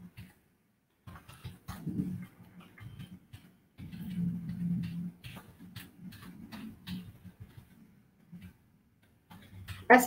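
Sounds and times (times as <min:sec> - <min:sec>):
computer keyboard typing: 0:01.0 - 0:10.0
low hum: 0:03.8 - 0:07.7.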